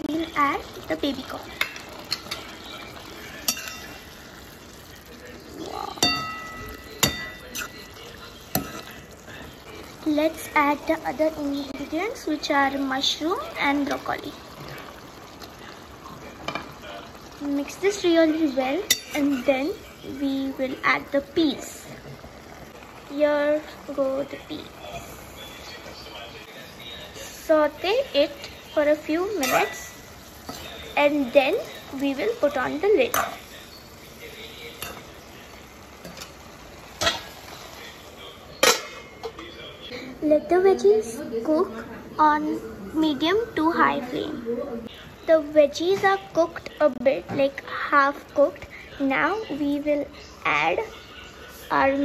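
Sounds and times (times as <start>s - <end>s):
vegetables sizzling in a pan: 0.0s - 52.0s
metal spatula stirring in a pan: 1.0s - 5.0s, 5.6s - 11.0s, 17.6s - 20.0s, 27.6s - 37.9s
metal lid clanking on a pan: 3.5s - 4.0s, 37.0s - 37.4s, 38.6s - 39.4s
spatula tapping a pan: 3.5s - 4.0s, 6.0s - 7.8s.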